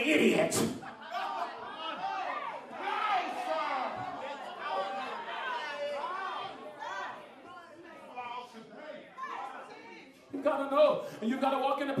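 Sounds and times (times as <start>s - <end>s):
congregation calling out and talking: 0.0s - 12.0s.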